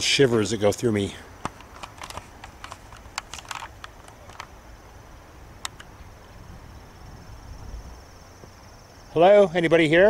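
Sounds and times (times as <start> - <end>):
faint outdoor hiss: 0.0 - 10.0
light irregular clicks: 1.4 - 4.6, 5.6 - 6.0.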